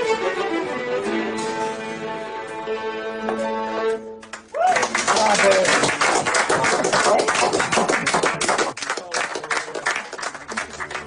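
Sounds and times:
audience applauding: 0:04.3 - 0:11.0
voices and cheers: 0:04.5 - 0:05.6.

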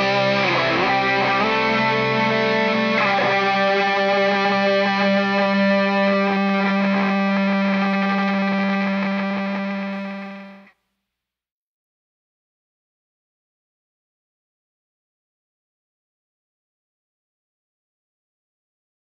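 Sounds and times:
distorted electric guitars: 0:00.0 - 0:10.7.

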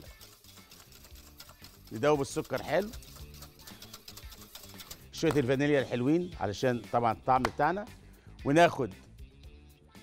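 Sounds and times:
whisk clicking against pan: 0:00.0 - 0:05.6
quiet background music: 0:00.0 - 0:10.0.

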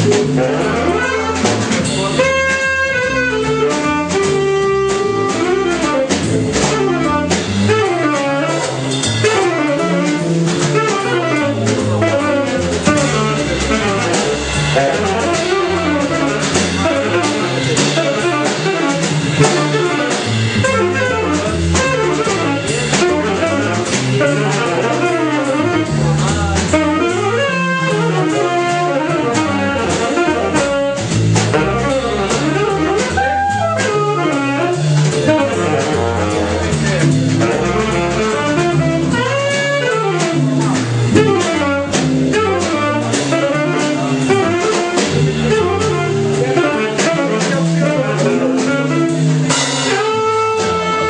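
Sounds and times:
bass: 0:00.0 - 0:51.0
drums: 0:00.0 - 0:51.0
tenor saxophone runs: 0:00.0 - 0:51.0
electric guitar: 0:26.7 - 0:45.6.

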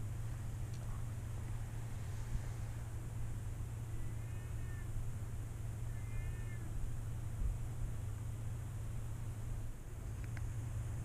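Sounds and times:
steady low hum: 0:00.0 - 0:11.0
faint animal-like cries: 0:03.9 - 0:05.0, 0:05.8 - 0:06.8.

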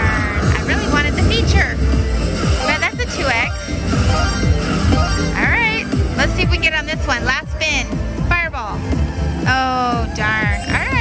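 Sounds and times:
slot machine bonus music: 0:02.4 - 0:05.8.

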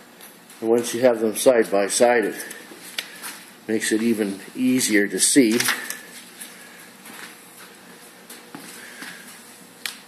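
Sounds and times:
footsteps on concrete floor: 0:02.4 - 0:04.2, 0:05.7 - 0:09.6.

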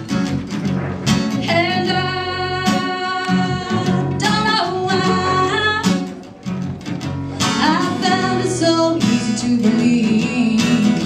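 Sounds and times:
electric bass: 0:00.0 - 0:11.0
strummed acoustic guitar: 0:00.0 - 0:11.0.

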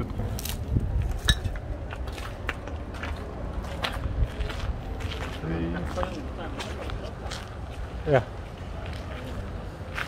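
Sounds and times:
footsteps crunching on rubble: 0:00.4 - 0:10.0.

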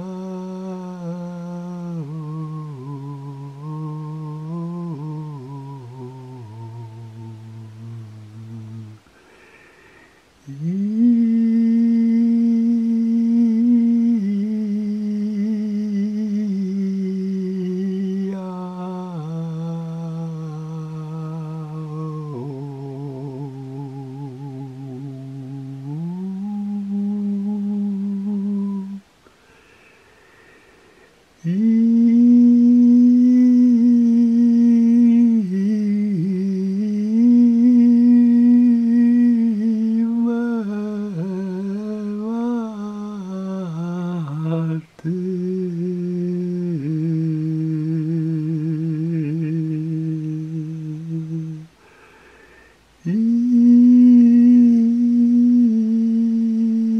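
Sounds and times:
person humming a chant: 0:00.0 - 0:30.7, 0:31.4 - 0:56.9.

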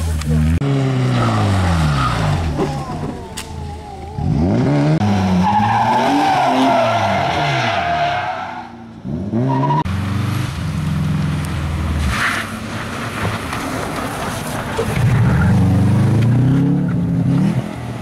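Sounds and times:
rally car engines revving: 0:00.0 - 0:18.0.

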